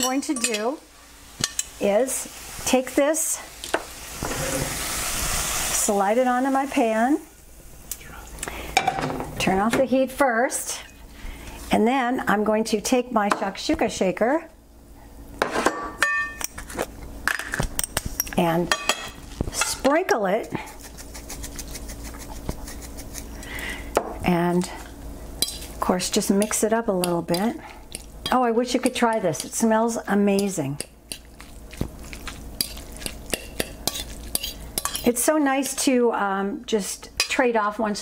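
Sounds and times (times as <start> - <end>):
fork clinking and scraping plate: 32.6 - 35.1.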